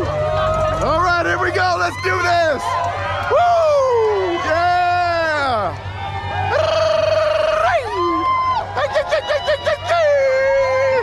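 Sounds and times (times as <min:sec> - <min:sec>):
runners whooping and cheering: 0:00.0 - 0:11.0
steady low hum: 0:00.0 - 0:11.0.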